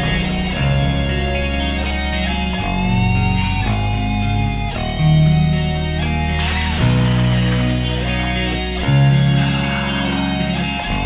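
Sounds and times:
heavy metal guitars and bass: 0:00.0 - 0:11.0
crash cymbal: 0:06.3 - 0:11.0.

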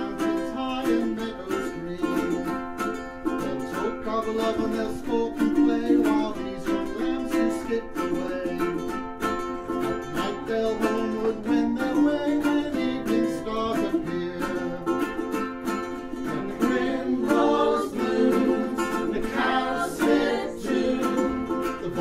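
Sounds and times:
plucked strings playing folk tune: 0:00.0 - 0:22.0.

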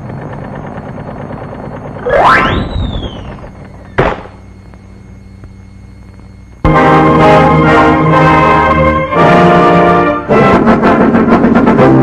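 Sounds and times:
cartoon whistle rising in pitch: 0:02.0 - 0:03.4
sharp crack: 0:04.0 - 0:04.4.

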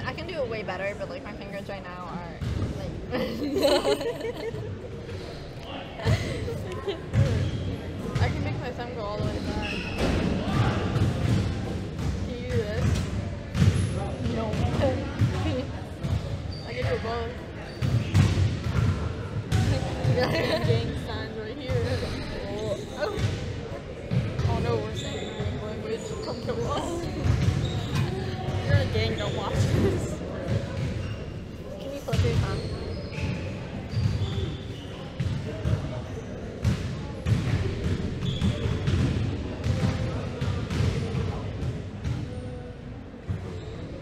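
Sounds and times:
people talking: 0:00.0 - 0:09.8, 0:12.3 - 0:13.0, 0:13.7 - 0:18.1, 0:19.5 - 0:30.9, 0:31.7 - 0:32.9
basketballs bouncing: 0:02.4 - 0:02.9, 0:06.0 - 0:10.3, 0:10.9 - 0:23.5, 0:26.2 - 0:31.2, 0:32.0 - 0:32.8, 0:36.6 - 0:42.3.

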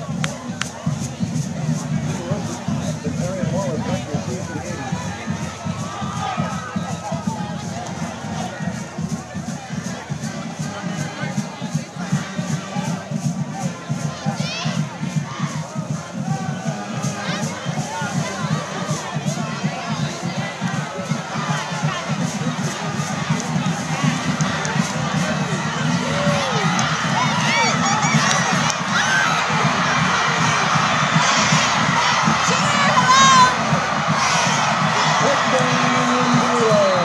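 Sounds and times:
crowd cheering and shouting: 0:00.0 - 0:37.0
steady rhythmic beat: 0:00.0 - 0:37.0.

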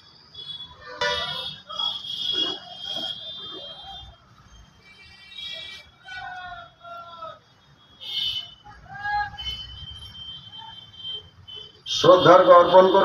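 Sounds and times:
high steady tone: 0:01.0 - 0:01.6
voice over loudspeaker: 0:12.0 - 0:13.0.

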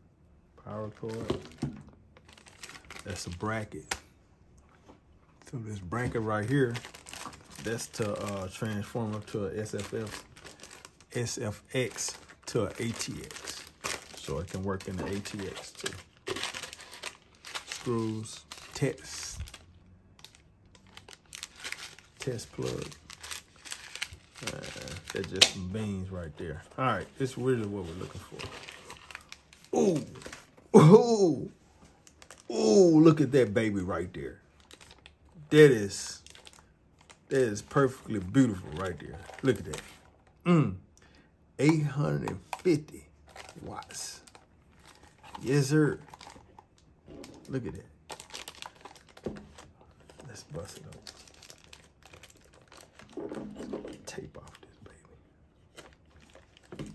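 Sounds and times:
plastic bag crinkling: 0:00.8 - 0:03.9, 0:05.4 - 0:30.7, 0:31.9 - 0:40.3, 0:42.4 - 0:55.0, 0:55.6 - 0:56.9.

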